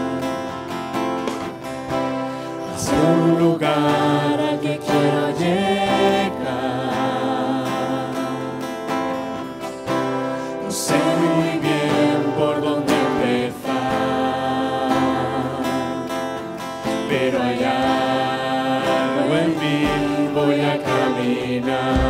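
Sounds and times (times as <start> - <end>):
group singing a hymn: 0.0 - 22.0
strummed acoustic guitars: 0.0 - 22.0.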